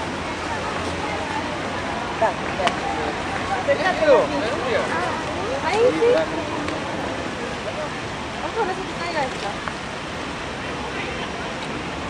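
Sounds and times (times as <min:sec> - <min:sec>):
faint voices: 0:00.0 - 0:12.0
steady rushing noise: 0:00.0 - 0:12.0.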